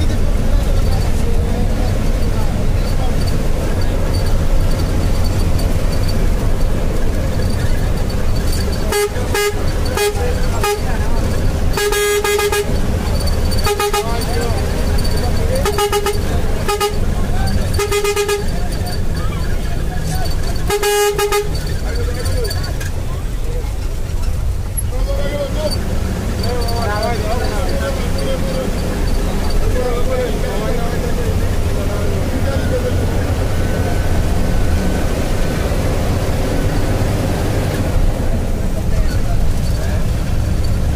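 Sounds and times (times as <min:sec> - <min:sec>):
bus engine and tyres rumbling: 0:00.0 - 0:40.9
vehicle horn honking: 0:08.0 - 0:19.2, 0:20.2 - 0:22.2.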